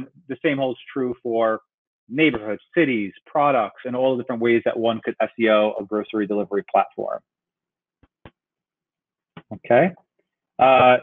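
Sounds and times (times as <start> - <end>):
man speaking: 0.0 - 7.2, 9.4 - 9.9, 10.6 - 11.0.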